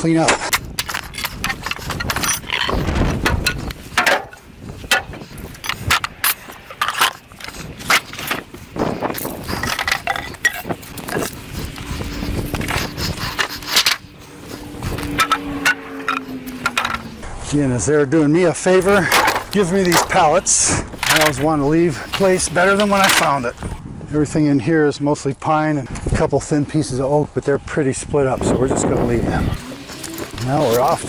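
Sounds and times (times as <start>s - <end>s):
boards clattering: 0.3s - 8.5s, 15.1s - 17.1s, 18.8s - 23.6s.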